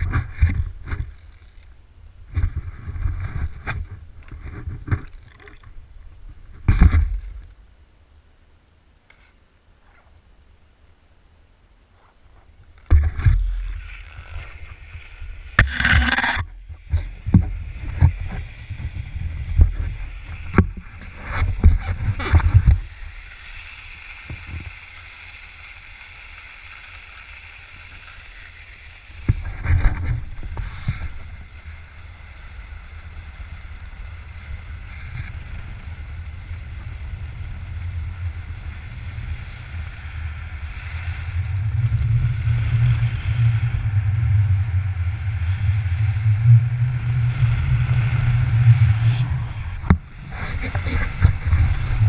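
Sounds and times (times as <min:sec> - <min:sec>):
skis hissing over snow: 0:12.0 - 0:52.0.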